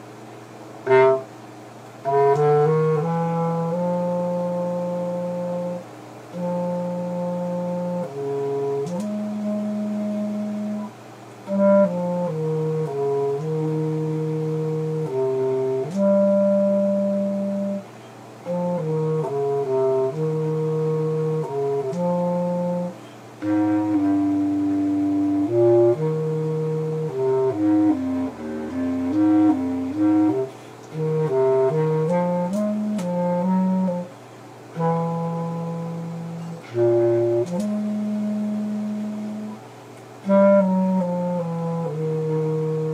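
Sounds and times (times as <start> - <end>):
solo brass slow melody: 0.0 - 42.9.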